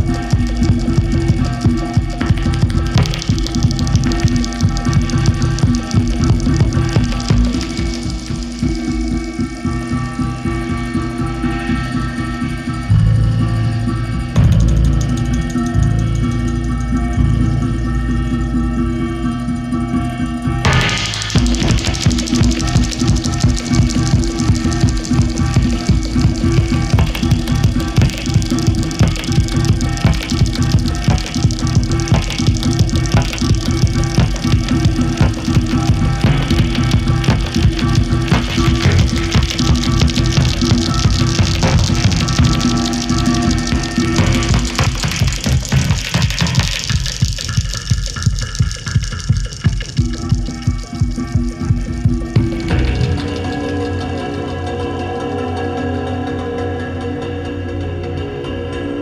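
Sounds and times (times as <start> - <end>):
techno beat: 0.0 - 10.2, 20.7 - 53.4
low drone: 0.0 - 48.6
dense metallic texture: 0.0 - 54.9.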